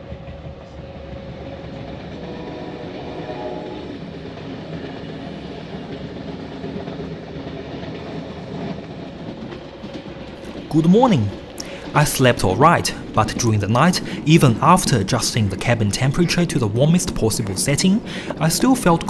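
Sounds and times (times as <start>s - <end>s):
train running on track: 0.0s - 19.0s.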